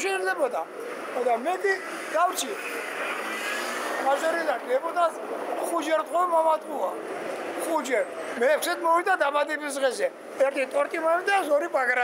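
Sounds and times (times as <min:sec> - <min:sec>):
car passing: 0:00.0 - 0:09.2.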